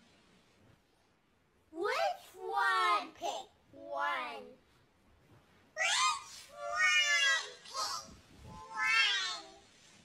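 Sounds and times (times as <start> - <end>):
pitch-shifted cartoon cat meows: 5.8 - 9.6.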